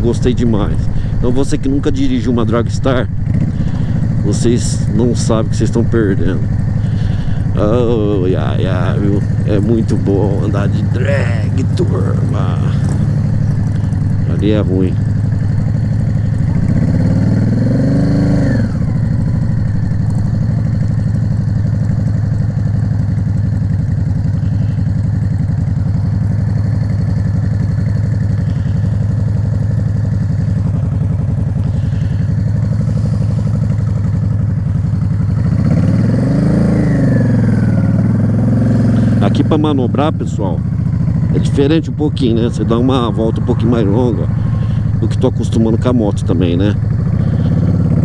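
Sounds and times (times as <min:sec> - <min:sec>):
motorcycle engine at low revs: 0:00.0 - 0:48.0.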